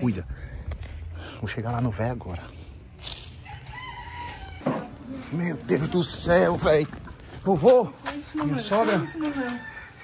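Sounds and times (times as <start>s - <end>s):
rooster crowing: 3.4s - 5.0s, 8.8s - 10.0s.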